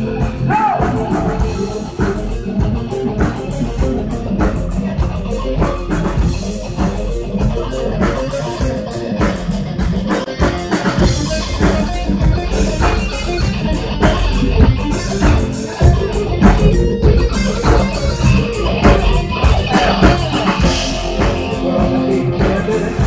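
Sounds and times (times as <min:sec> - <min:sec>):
bass guitar: 0:00.0 - 0:23.0
drum kit: 0:00.0 - 0:23.0
electric guitar: 0:00.0 - 0:23.0.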